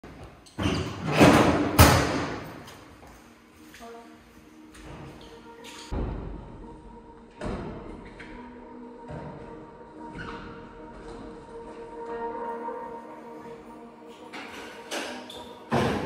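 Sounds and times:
quiet music drone: 0.2s - 16.0s.

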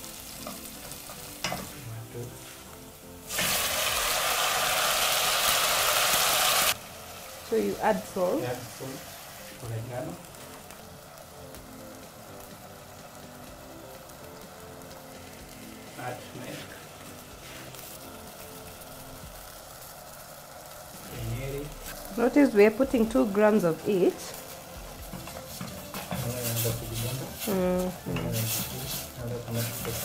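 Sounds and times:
faint sizzle: 0.0s - 30.0s
onions frying in oil: 0.0s - 30.0s
quiet background music: 0.0s - 30.0s
person humming: 27.4s - 28.5s.

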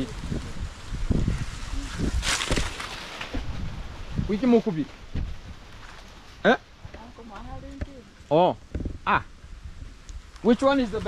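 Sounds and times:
dry leaves rustling: 0.0s - 8.4s
low wind rumble: 0.0s - 11.0s
microphone handling: 8.6s - 9.0s.

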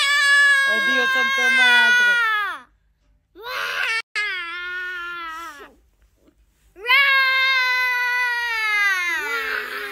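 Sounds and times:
toddler wailing cry: 3.4s - 5.8s.

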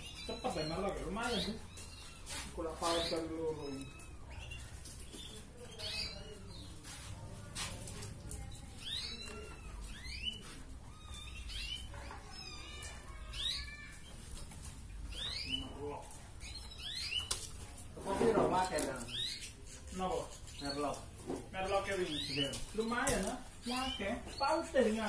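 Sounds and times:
canary singing: 0.0s - 25.0s.

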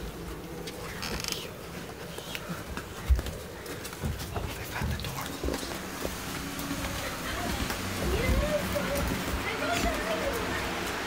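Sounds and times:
footsteps on floor: 1.1s - 11.0s.

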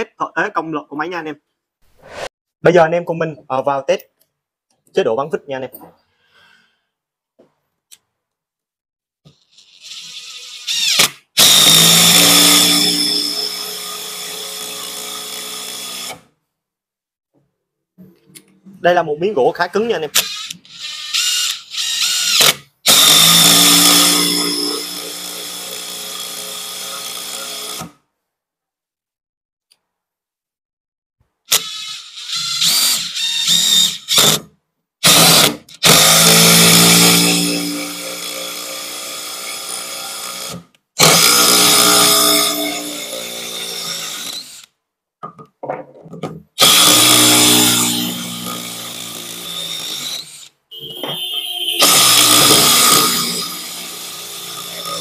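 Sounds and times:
impact driver driving screws into wood: 10.0s - 16.3s, 20.2s - 28.0s, 31.5s - 44.7s, 46.6s - 50.5s, 51.8s - 55.0s.

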